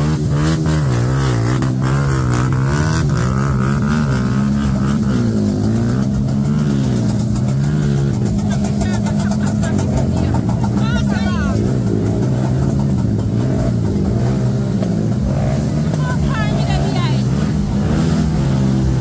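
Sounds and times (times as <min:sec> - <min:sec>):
motorcycle engine revving: 0:00.0 - 0:19.0
crowd voices: 0:06.4 - 0:18.4.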